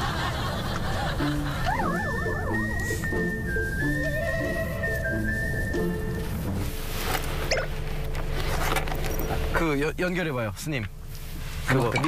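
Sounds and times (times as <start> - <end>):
low repeating accompaniment: 0.1 - 7.0
high whistle-like melody: 1.2 - 6.7.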